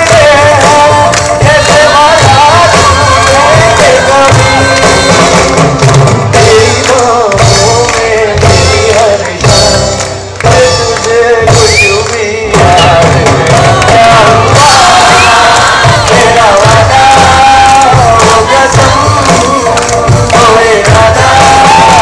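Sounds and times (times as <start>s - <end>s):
live band playing: 0.0s - 22.0s.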